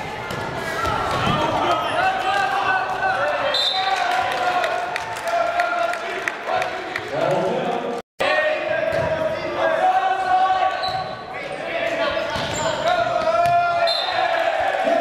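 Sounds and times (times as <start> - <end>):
people shouting and cheering: 0.0 - 15.0.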